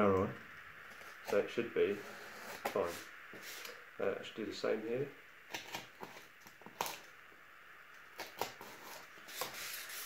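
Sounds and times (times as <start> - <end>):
craft knife cutting cardboard: 1.0 - 3.8, 5.5 - 7.0, 8.2 - 10.0.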